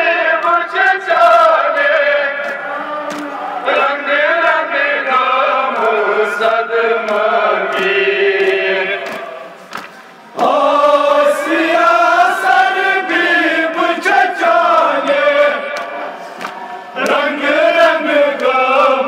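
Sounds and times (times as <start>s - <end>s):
men chanting over loudspeaker: 0.0s - 9.7s, 10.3s - 19.0s.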